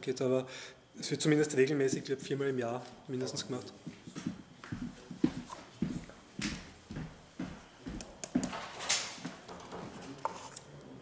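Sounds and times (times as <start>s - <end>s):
footsteps walking: 1.8s - 10.2s.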